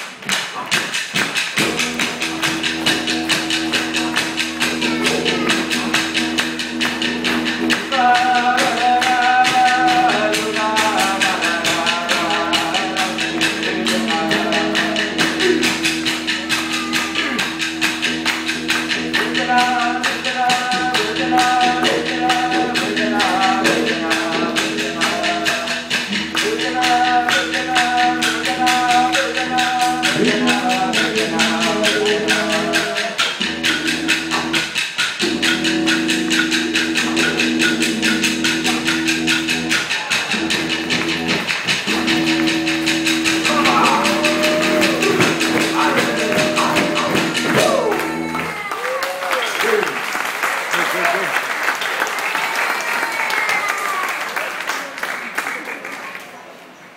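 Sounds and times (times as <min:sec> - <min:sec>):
didgeridoo drone: 0:01.6 - 0:32.8, 0:33.4 - 0:48.4
men singing a chant: 0:07.7 - 0:16.0, 0:19.2 - 0:33.3, 0:43.2 - 0:48.3.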